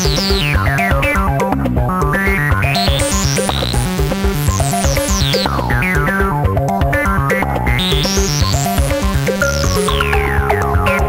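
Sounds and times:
synth bass line: 0.0s - 11.0s.

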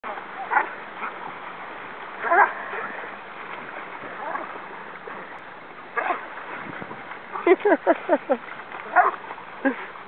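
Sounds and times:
steady background hiss: 0.1s - 10.0s.

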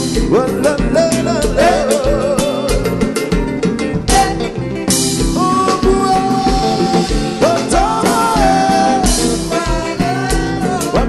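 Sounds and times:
band playing live: 0.0s - 11.0s.

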